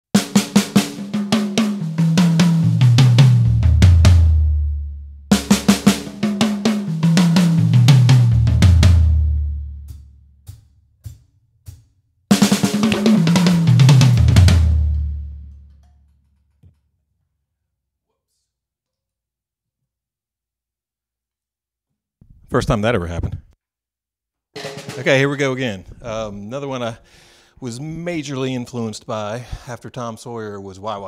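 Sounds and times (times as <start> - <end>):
drum fill down the toms: 0.2 - 15.7, 24.6 - 25.4.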